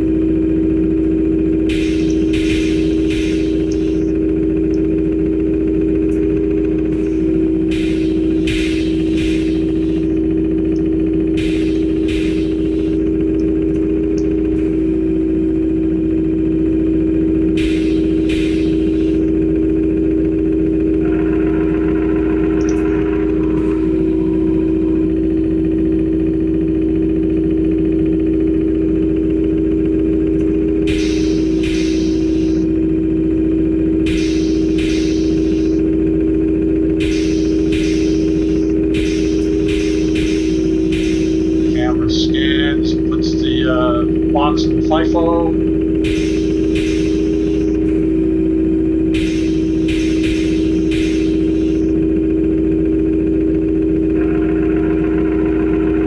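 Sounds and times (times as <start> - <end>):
conveyor motor hum: 0.0 - 56.0.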